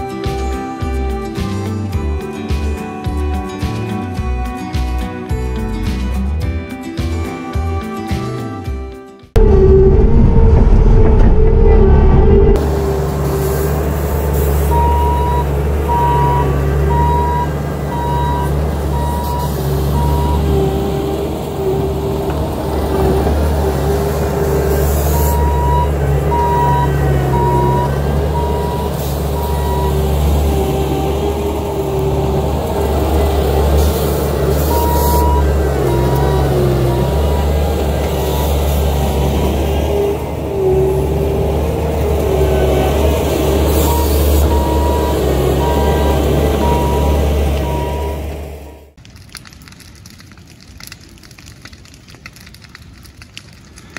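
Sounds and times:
diesel engine running: 9.3s - 49.0s
reversing alarm beeping: 14.7s - 20.6s, 25.1s - 31.4s, 34.6s - 37.5s, 43.5s - 48.9s.

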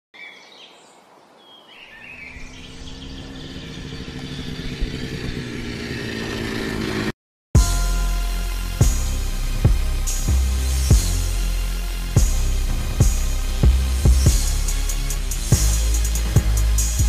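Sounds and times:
birds chirping: 0.2s - 7.1s
vehicle engine rumbling: 2.1s - 17.0s
loud music with heavy beat: 7.6s - 17.0s.

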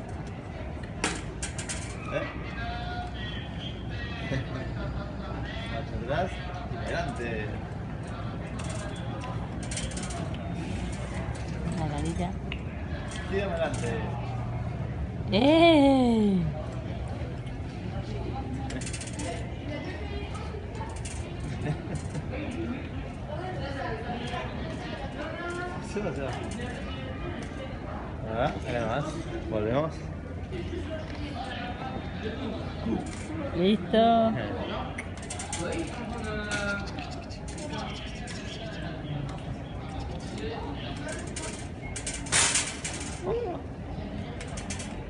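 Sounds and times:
wire basket trolley rattling: 1.0s - 2.1s, 8.5s - 12.4s, 18.6s - 19.6s, 20.8s - 22.6s, 35.0s - 38.8s, 40.4s - 43.5s, 44.2s - 45.0s
light metallic clicks and rattles: 35.0s - 38.4s, 44.4s - 45.0s.

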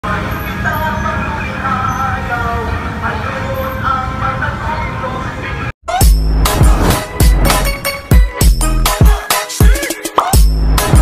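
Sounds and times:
road traffic rumble: 0.0s - 8.2s.

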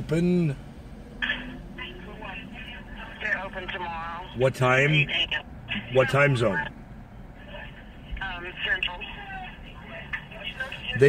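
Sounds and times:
woman talking over phone speaker: 1.2s - 6.7s, 7.4s - 11.0s.

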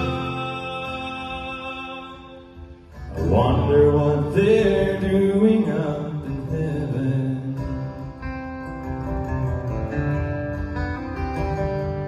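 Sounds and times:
acoustic guitar: 0.0s - 12.0s.

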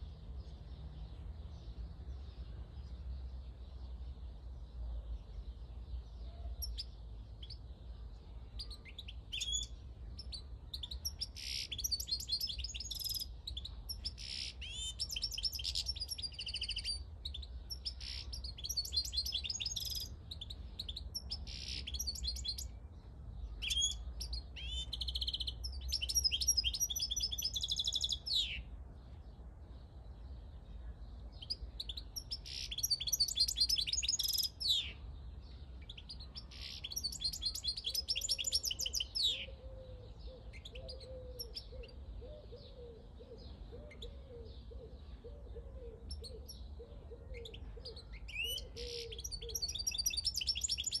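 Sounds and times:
goldfinch singing: 8.6s - 22.8s, 31.4s - 35.0s, 35.8s - 39.6s.

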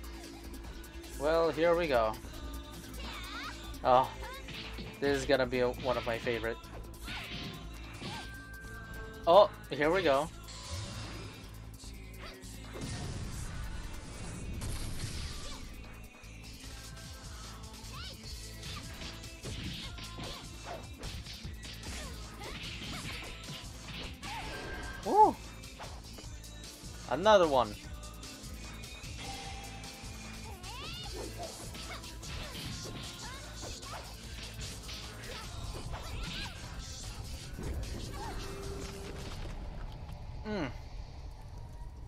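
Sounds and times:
fight scene music: 0.0s - 40.7s
punch and kick impacts: 18.6s - 24.5s.

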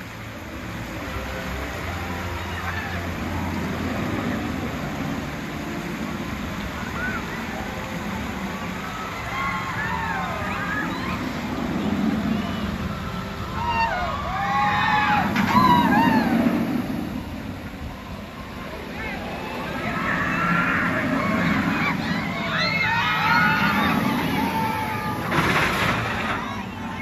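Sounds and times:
roller coaster rumbling on track: 0.0s - 27.0s
crowd voices and shouts: 0.7s - 27.0s.

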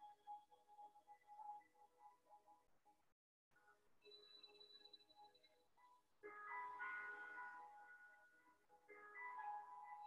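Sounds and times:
soft bell-like music: 0.0s - 2.6s, 4.0s - 10.0s.

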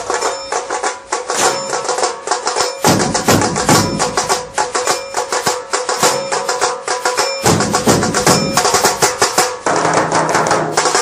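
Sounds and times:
music with fast dense drumming: 0.0s - 11.0s.

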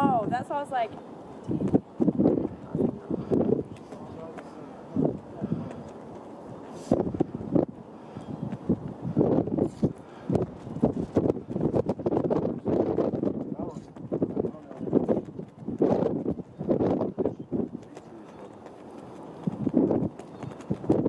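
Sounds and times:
people talking: 0.0s - 1.0s, 2.5s - 5.9s, 13.5s - 15.2s, 16.6s - 18.7s.

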